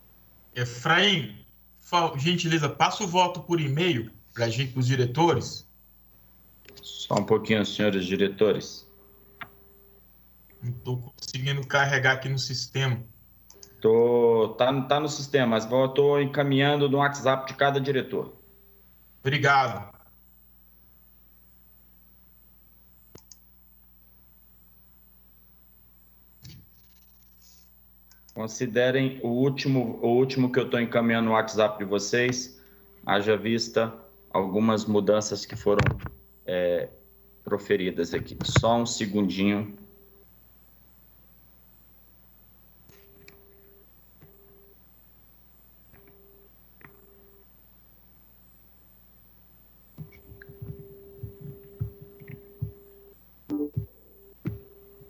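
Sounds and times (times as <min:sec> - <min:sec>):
faint electrical hum: 0:00.0 - 0:55.0
faint clicks: 0:13.5 - 0:13.8, 0:23.1 - 0:23.4
knocks and taps at a desk: 0:50.0 - 0:52.8
steady tone: 0:50.0 - 0:55.0.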